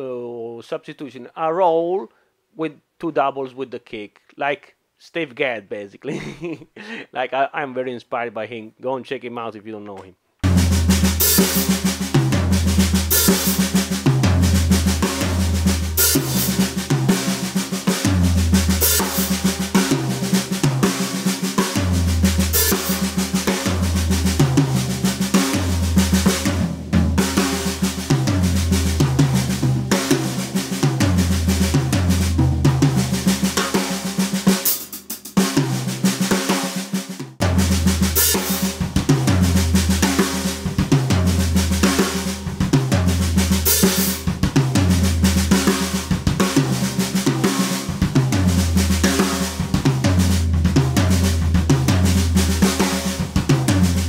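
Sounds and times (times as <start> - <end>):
bass drum kicks: 10.4 - 17.1
drum rolls on snare and toms: 10.4 - 54.0.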